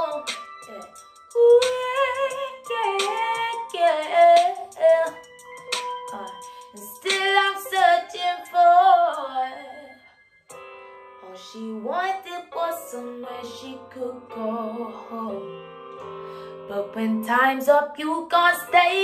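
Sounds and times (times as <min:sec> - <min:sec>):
woman singing: 0:00.0 - 0:10.1, 0:11.2 - 0:15.5, 0:16.7 - 0:19.0
soft held backing chords: 0:00.0 - 0:19.0.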